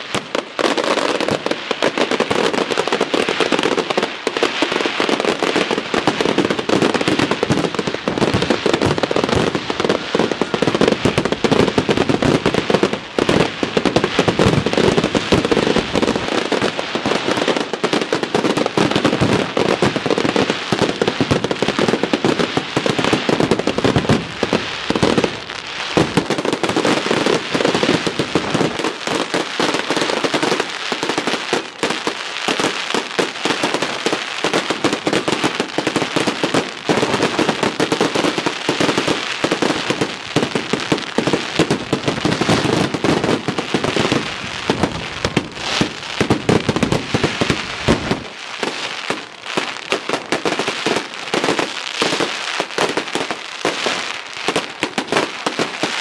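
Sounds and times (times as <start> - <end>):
fireworks bursting: 0.0 - 56.0.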